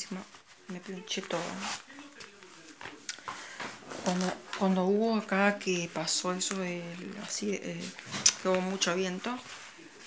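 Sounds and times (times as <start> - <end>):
gloves and clothing rustling: 0.0 - 10.0.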